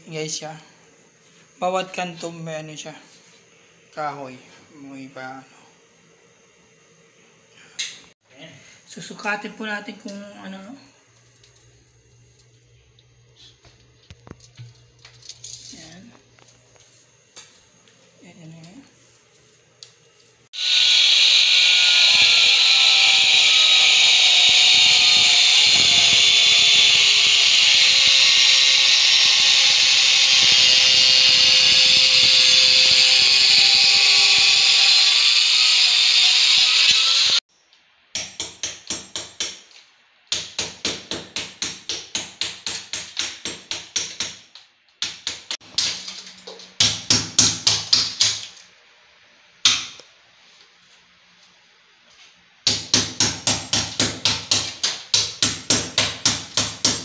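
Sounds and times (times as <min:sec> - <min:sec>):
angle grinder cutting tile: 0:20.6 - 0:37.4.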